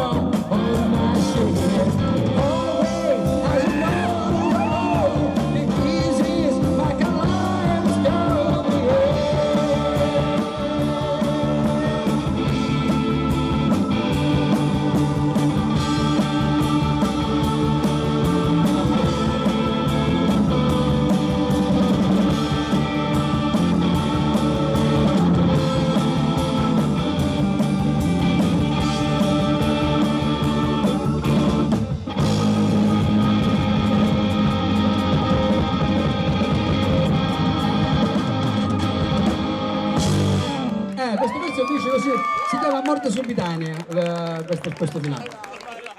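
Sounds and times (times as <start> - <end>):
live rock band playing: 0.0 - 42.6.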